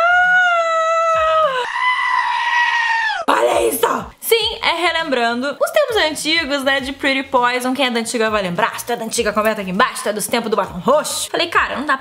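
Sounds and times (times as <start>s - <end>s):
woman screaming: 0.0s - 4.1s.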